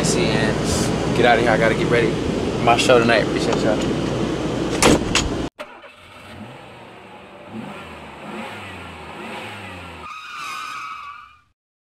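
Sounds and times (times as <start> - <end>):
vehicle engine revving: 5.7 - 10.1.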